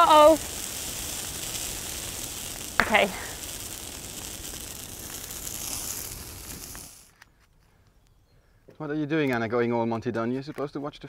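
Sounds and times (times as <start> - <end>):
bonfire burning with hiss: 0.0 - 8.2.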